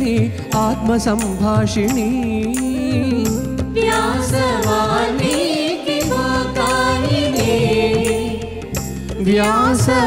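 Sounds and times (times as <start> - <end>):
sustained instrumental accompaniment: 0.0 - 10.0.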